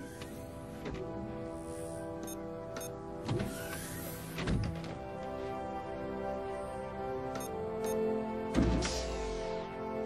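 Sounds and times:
synth music: 0.0 - 10.0.

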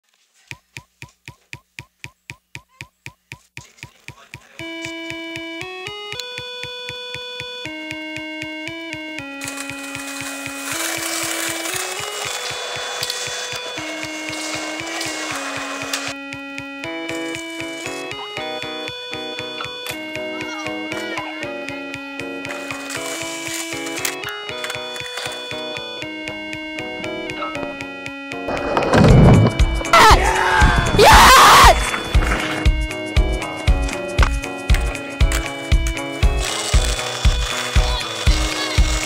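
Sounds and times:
steady clicking beat: 0.5 - 39.0
melody of held notes: 4.6 - 39.0.

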